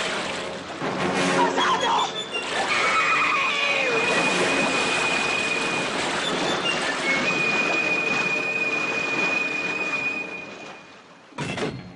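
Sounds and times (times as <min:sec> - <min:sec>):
water churning and thrashing: 0:00.0 - 0:11.9.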